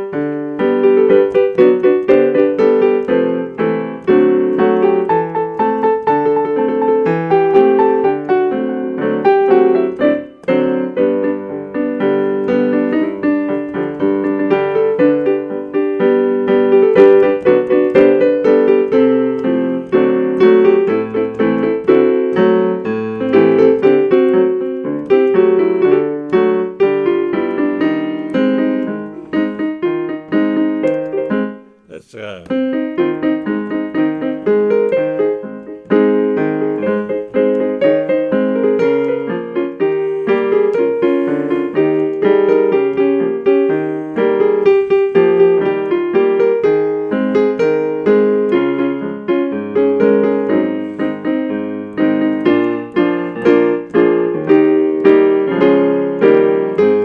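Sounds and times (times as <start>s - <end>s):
electronic keyboard playing piano: 0.0s - 57.0s.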